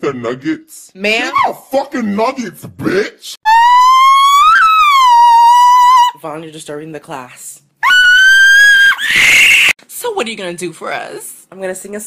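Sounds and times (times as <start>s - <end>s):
woman shrieking: 3.5s - 6.2s, 7.8s - 9.7s.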